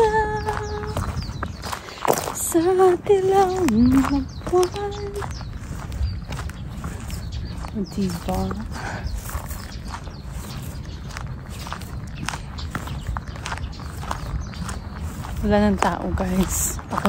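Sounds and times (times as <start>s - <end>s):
footsteps on gravel: 0.0s - 17.0s.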